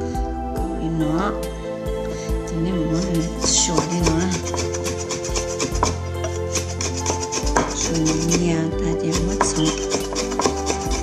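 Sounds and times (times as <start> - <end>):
background music: 0.0 - 11.0
knife chopping on wooden board: 3.4 - 8.4, 9.1 - 11.0.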